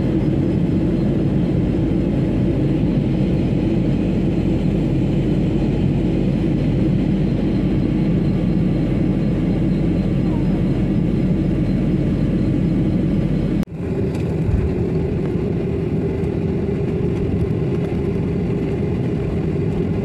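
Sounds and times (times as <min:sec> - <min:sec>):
aircraft engine noise on ground: 0:00.0 - 0:20.0
jet engines and airflow rushing: 0:00.0 - 0:20.0.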